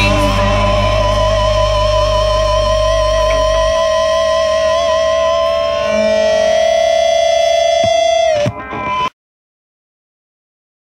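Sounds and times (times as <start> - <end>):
low downward slide: 0.0 - 9.1
sustained electric guitar tone: 0.0 - 9.1.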